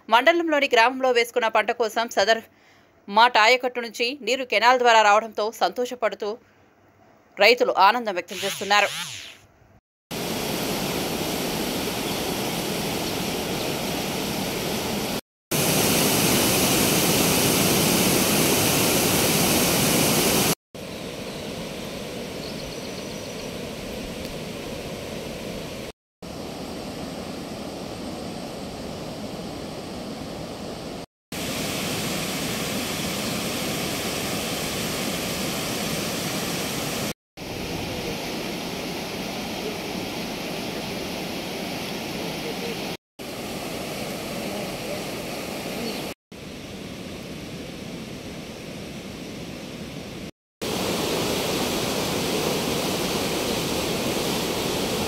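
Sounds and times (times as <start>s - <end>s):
water rushing over weir: 50.6s - 55.0s.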